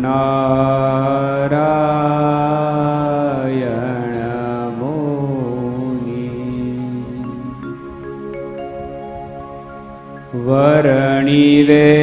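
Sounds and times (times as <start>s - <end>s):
man chanting: 0.0s - 7.5s, 10.4s - 12.0s
steady low drone: 2.9s - 12.0s.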